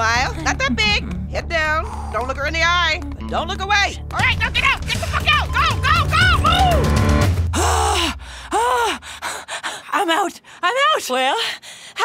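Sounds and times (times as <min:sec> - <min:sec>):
girl gasping breathlessly: 0:07.6 - 0:10.6.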